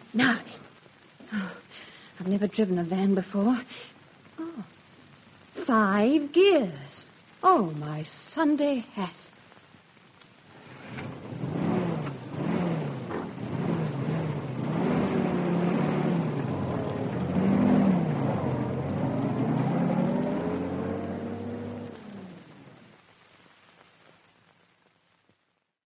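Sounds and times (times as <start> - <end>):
van engine revving: 10.5 - 22.8.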